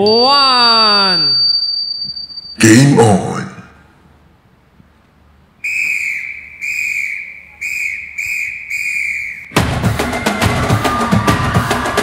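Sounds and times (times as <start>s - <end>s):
whistle blasts: 5.6s - 9.7s
music with heavy drums: 9.5s - 12.0s.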